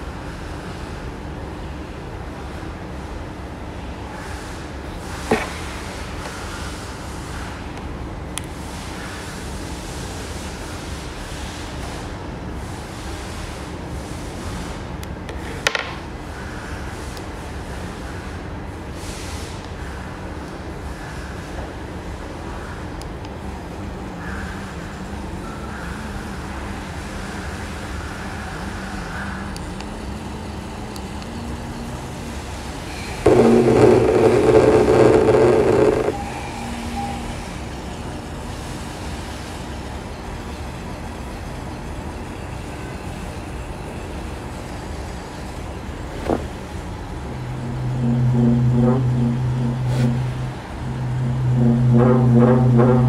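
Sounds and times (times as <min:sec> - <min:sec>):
click: 0:07.8 - 0:08.5
vibrator motor buzzing: 0:32.1 - 0:37.6, 0:47.2 - 0:53.0.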